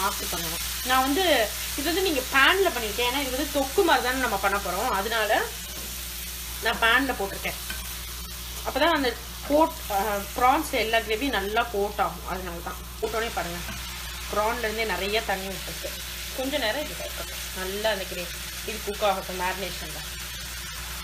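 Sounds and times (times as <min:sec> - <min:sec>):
prawns sizzling in hot oil: 0:00.0 - 0:21.0.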